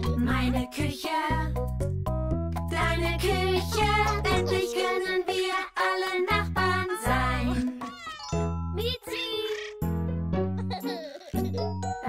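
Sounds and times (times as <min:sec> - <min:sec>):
children's song music: 0:00.0 - 0:12.0
cartoon kitten meowing: 0:07.8 - 0:08.4.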